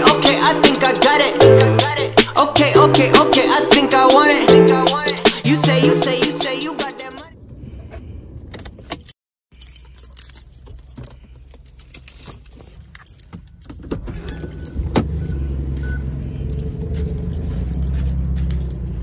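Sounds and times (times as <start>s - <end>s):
car keys jangling: 7.8s - 19.0s.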